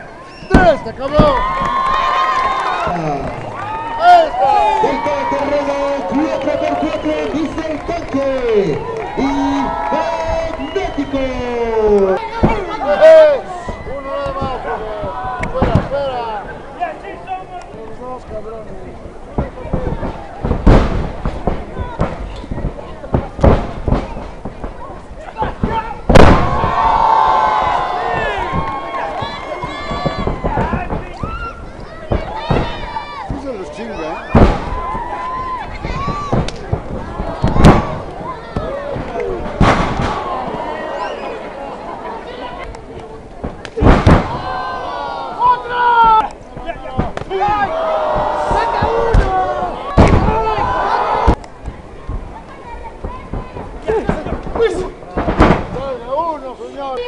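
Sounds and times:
crowd screaming and cheering: 0.0 - 16.1, 26.4 - 36.5, 37.1 - 42.6, 47.2 - 51.4
people shouting: 0.5 - 7.5, 8.7 - 16.4, 25.3 - 41.6, 43.8 - 51.4
wrestlers slamming onto mat: 25.5 - 33.5, 34.3 - 40.7, 43.4 - 44.8, 46.0 - 51.4.

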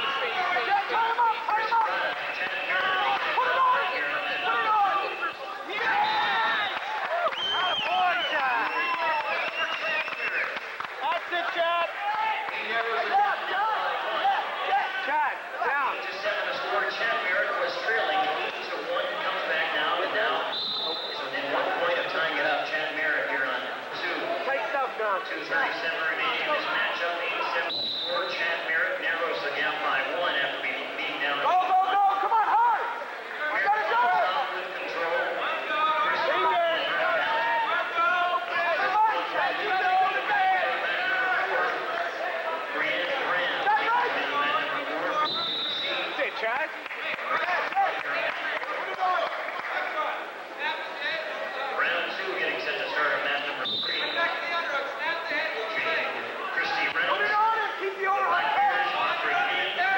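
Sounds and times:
many people talking and calling out: 0.0 - 59.9.

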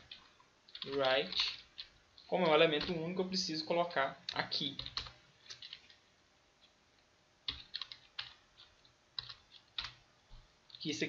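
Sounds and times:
computer keyboard typing: 0.0 - 3.2, 4.2 - 6.0, 7.4 - 10.9.

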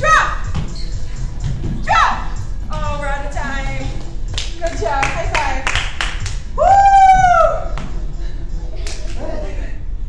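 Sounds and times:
sharp hand claps: 4.3 - 6.4.

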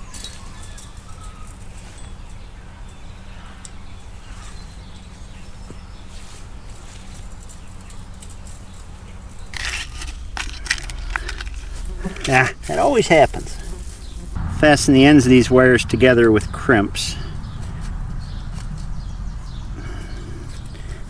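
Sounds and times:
rustling and crackling weeds: 0.0 - 21.0
low steady rumble: 8.6 - 21.0.

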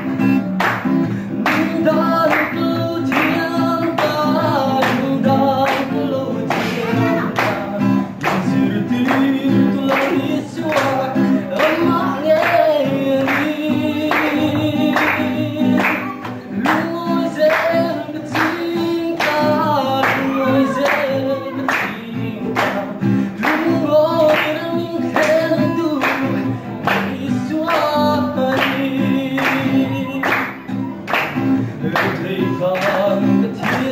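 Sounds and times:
hand-clapping on the beat: 0.0 - 33.9
strummed acoustic guitar: 0.0 - 33.9
group singing a worship song: 4.8 - 17.9.

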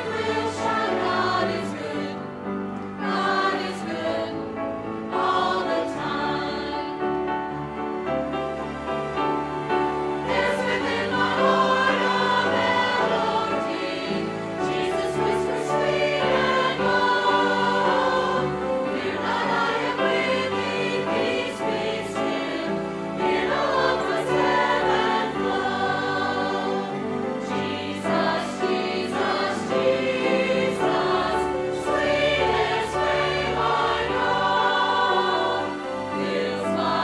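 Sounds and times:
church choir singing: 0.0 - 37.0.

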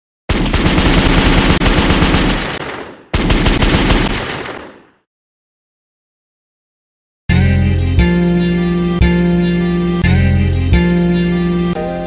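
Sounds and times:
machine-gun fire bursts: 0.3 - 5.0.

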